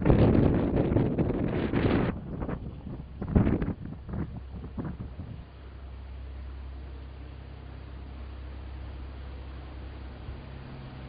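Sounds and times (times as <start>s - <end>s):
wind buffeting microphone: 0.0s - 5.5s.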